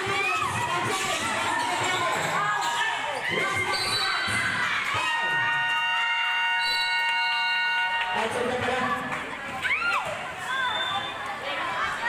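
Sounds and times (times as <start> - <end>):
basketball bouncing: 0.0 - 5.5
players and crowd calling out: 0.0 - 12.0.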